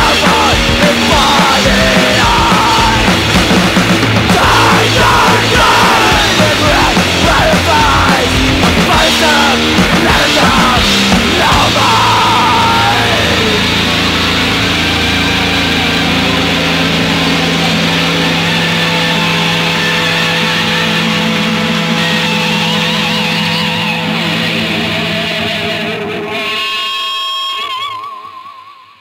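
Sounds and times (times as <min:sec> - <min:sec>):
distorted electric guitar drone: 0:00.0 - 0:29.0.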